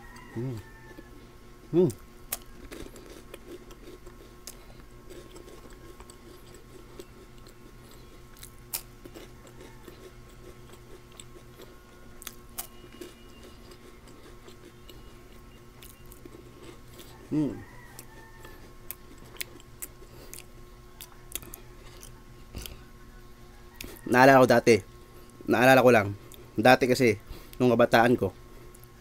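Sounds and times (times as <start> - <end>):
faint steady hum: 0.0 - 29.0
chewing crunchy wafer: 1.8 - 27.8.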